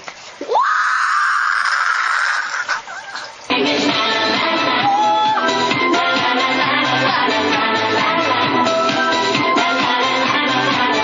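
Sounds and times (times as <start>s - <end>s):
girl screaming: 0.5s - 3.0s, 4.8s - 5.5s.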